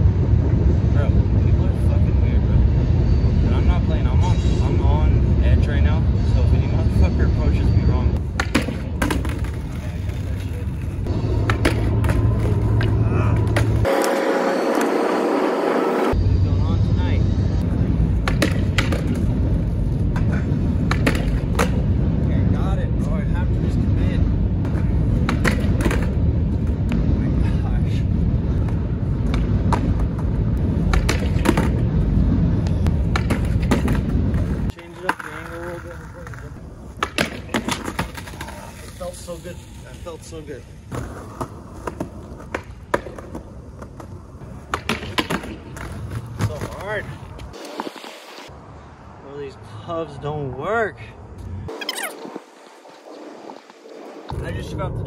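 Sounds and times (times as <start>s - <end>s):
skateboard wheels rumbling on concrete: 8.2s - 16.2s, 18.0s - 22.6s, 23.2s - 48.5s
skateboard clacks: 8.3s - 15.0s, 18.2s - 19.3s, 20.1s - 21.9s, 24.6s - 26.2s, 28.6s - 31.8s, 33.0s - 39.0s, 40.9s - 47.8s.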